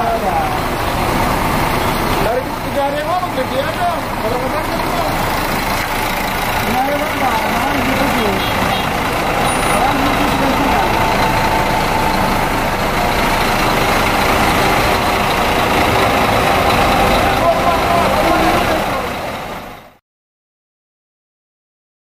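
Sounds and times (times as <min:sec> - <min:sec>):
voices: 0:00.0 - 0:19.4
diesel bus engines idling: 0:00.0 - 0:20.0.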